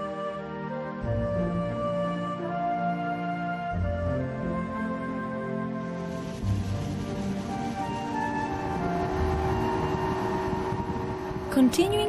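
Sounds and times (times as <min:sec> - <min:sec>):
wind: 0:01.1 - 0:12.0
motorboat engine drone: 0:06.0 - 0:12.0.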